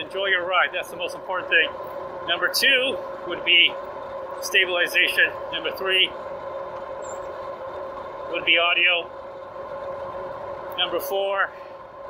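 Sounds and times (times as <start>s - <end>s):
electric bike motor whine: 1.2s - 12.0s.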